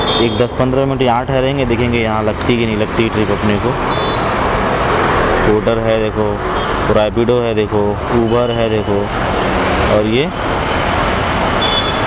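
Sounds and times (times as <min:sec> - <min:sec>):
passing traffic: 0:00.0 - 0:12.0.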